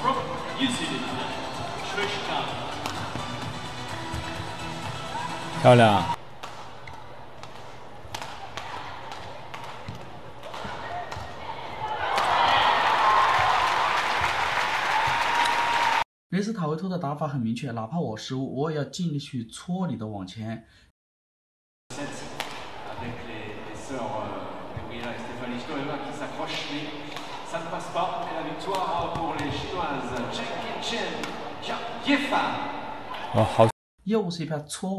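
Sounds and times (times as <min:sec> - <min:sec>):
crowd noise: 0:00.0 - 0:06.4, 0:21.9 - 0:33.7
racket hitting shuttlecock: 0:02.7 - 0:03.3, 0:06.3 - 0:12.3, 0:22.3 - 0:22.9, 0:26.4 - 0:27.5, 0:28.2 - 0:31.5.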